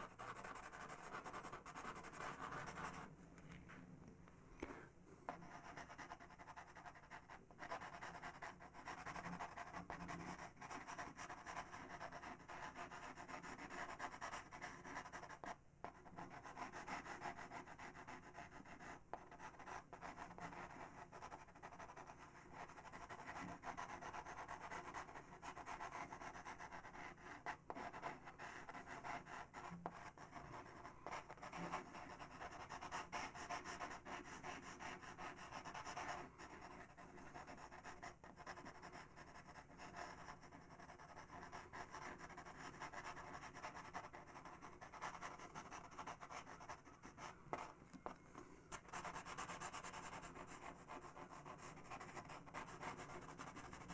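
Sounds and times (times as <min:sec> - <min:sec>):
pencil scratching on paper: 0:00.0 - 0:03.1, 0:05.3 - 0:53.9.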